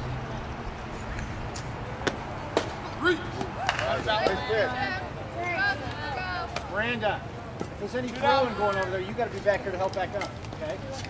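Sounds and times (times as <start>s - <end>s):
voices shouting: 0.4s - 9.0s
bat hitting softball: 3.4s - 4.4s.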